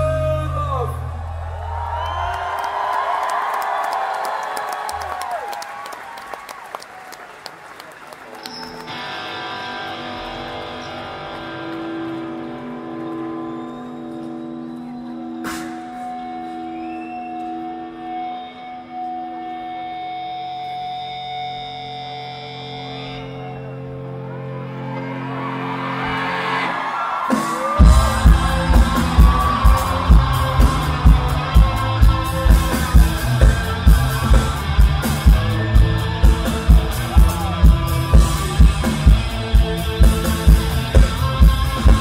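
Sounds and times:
crowd cheering and clapping: 0:00.0 - 0:18.1, 0:23.3 - 0:42.0
electric guitar sustained notes: 0:08.3 - 0:42.0.

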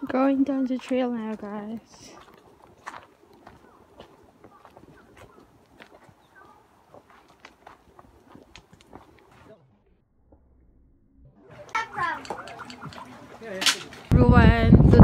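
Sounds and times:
footsteps on a dirt trail: 0:00.0 - 0:09.6.

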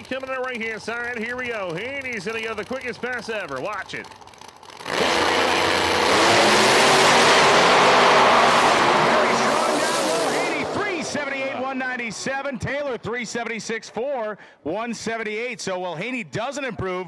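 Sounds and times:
drag cars launching at full throttle: 0:00.0 - 0:13.9.

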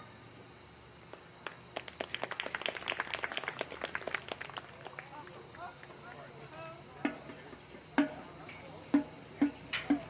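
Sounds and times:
small crowd clapping outdoors: 0:01.0 - 0:08.1.

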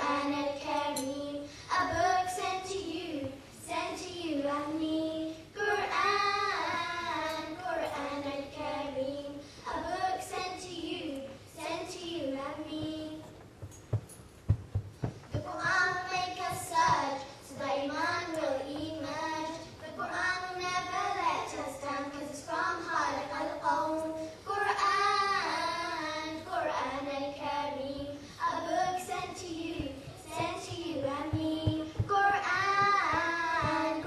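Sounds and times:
children singing unaccompanied: 0:00.0 - 0:13.3, 0:15.4 - 0:34.0
soft low thumps: 0:12.5 - 0:19.6, 0:27.8 - 0:34.0.

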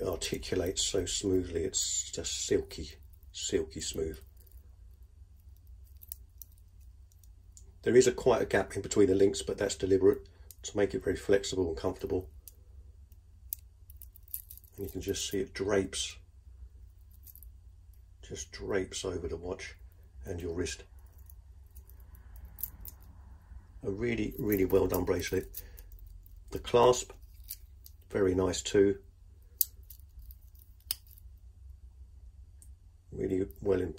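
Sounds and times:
watch bracelet links clicking: 0:05.4 - 0:07.3, 0:13.5 - 0:14.8, 0:21.0 - 0:23.1, 0:27.1 - 0:28.0, 0:29.6 - 0:31.2
faint clicks of watch bracelet links: 0:05.4 - 0:07.7, 0:13.5 - 0:14.9.

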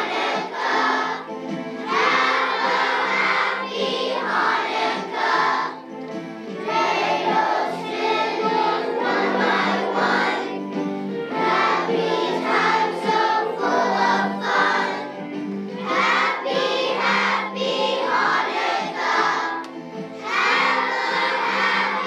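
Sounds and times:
children's choir singing: 0:00.0 - 0:22.0.

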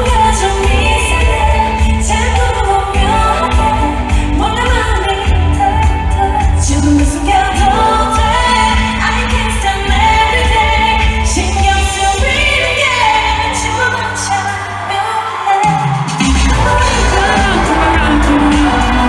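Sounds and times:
female group singing pop song: 0:00.0 - 0:19.0
heavy bass backing track: 0:16.0 - 0:19.0.

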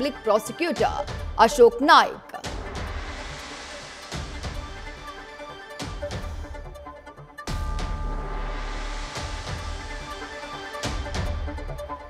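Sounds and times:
news background music: 0:00.0 - 0:12.0.

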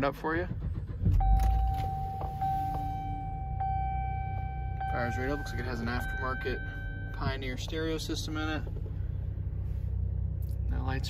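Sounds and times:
car engine starting and idling: 0:00.0 - 0:11.0
steady electronic tone: 0:01.2 - 0:07.5.

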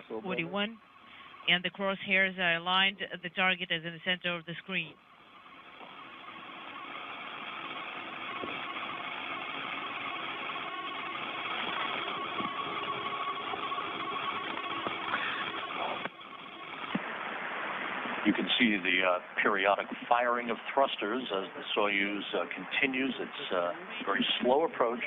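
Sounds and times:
faint steady whine: 0:00.0 - 0:25.0
radio static hiss: 0:00.0 - 0:25.0.

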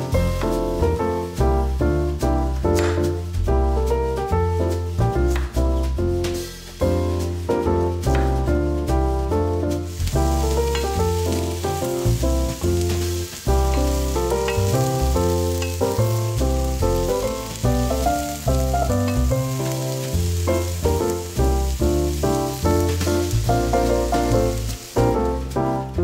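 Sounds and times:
sprouts sizzling in butter: 0:00.0 - 0:03.8, 0:04.7 - 0:26.0
background music: 0:00.0 - 0:26.0.

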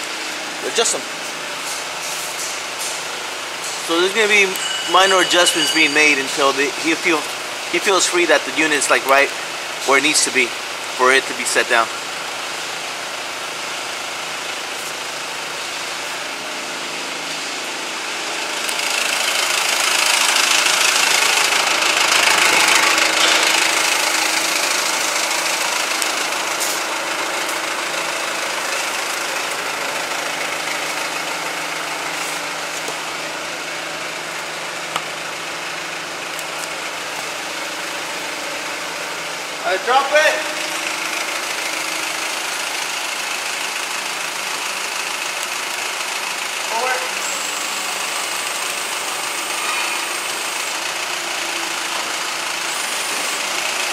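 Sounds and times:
forklift engine running: 0:00.0 - 0:53.9
loud pitched squeaks: 0:03.7 - 0:08.0.

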